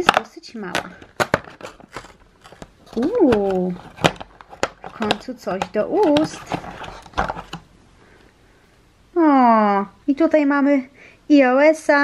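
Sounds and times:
cardboard rustling and scraping: 0.9 - 7.7.

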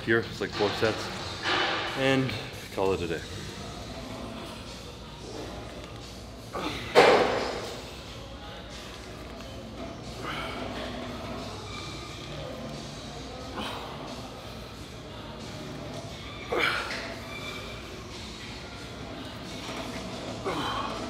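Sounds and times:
faint background music: 0.0 - 21.0.

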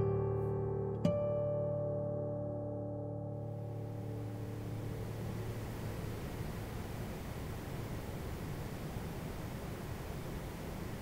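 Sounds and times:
even hiss: 3.4 - 11.0
low hum: 3.4 - 11.0.

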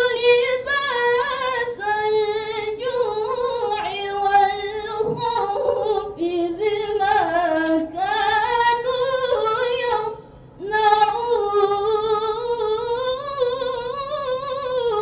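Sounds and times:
girl reciting melodically: 0.0 - 15.0.

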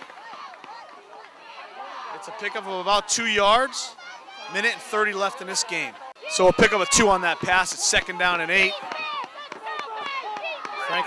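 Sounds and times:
people calling out: 0.0 - 11.0.

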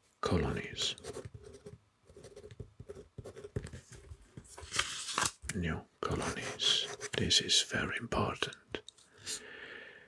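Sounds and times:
pen scratching on paper: 0.9 - 4.1, 6.2 - 7.2.

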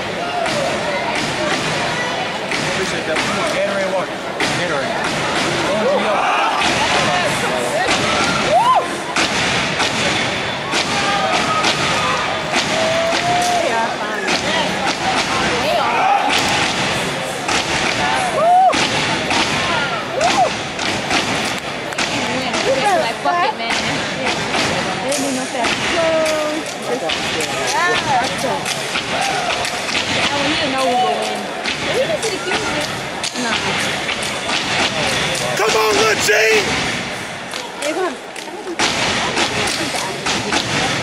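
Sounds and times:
people shouting and yelling: 0.0 - 40.8.

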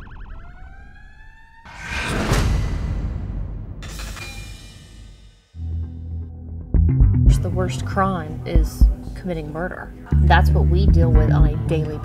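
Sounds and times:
police siren yelp and wail: 0.0 - 1.7
loud rushing noise: 1.7 - 5.4.

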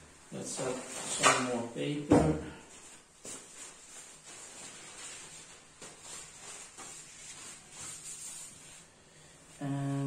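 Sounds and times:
paper sheets rustling and sliding: 3.2 - 9.0.

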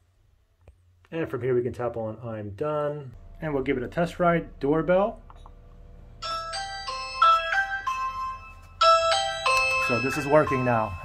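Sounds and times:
electronic doorbell chime: 6.1 - 11.0.

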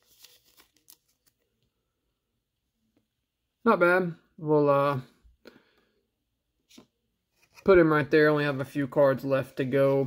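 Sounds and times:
card crinkling: 0.0 - 1.7.

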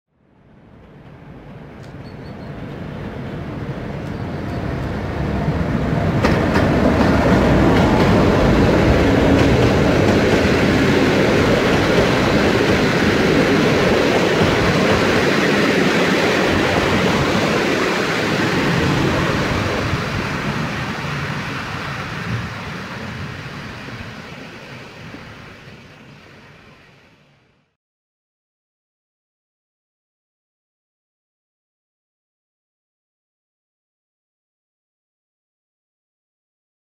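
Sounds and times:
train wheels rolling on rails: 0.6 - 27.0.

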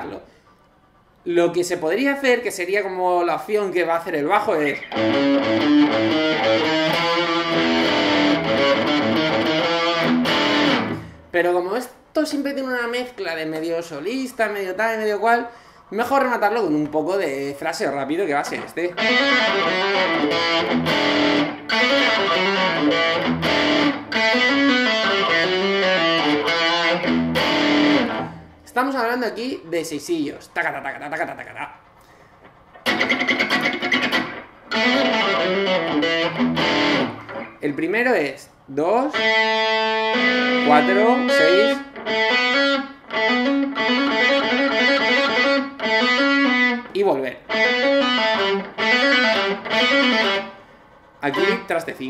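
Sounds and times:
distorted electric guitar lead: 4.6 - 11.3, 18.5 - 28.6, 32.4 - 37.6, 39.1 - 51.7.

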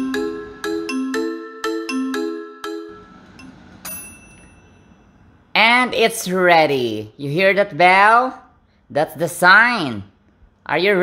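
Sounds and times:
jingle of ringing notes: 0.0 - 5.4
timer bell ding: 0.0 - 5.4.

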